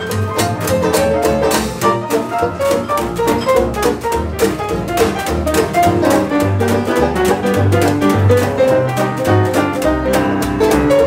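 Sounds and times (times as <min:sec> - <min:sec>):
small jazz band playing: 0:00.0 - 0:11.0.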